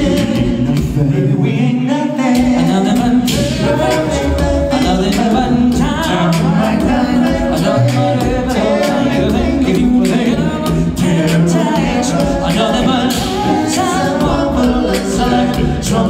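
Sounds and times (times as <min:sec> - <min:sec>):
beatboxing: 0:00.0 - 0:16.0
male voices singing in harmony: 0:00.0 - 0:16.0
sung bass line: 0:00.0 - 0:16.0.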